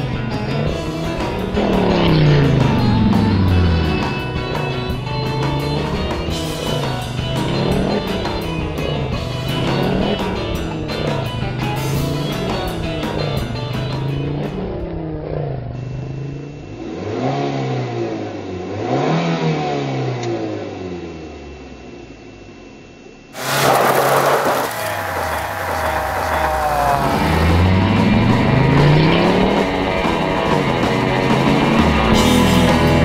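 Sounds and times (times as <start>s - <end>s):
car engine revving: 0.0s - 21.2s, 23.4s - 33.0s
sudden loud burst of noise: 23.4s - 28.5s.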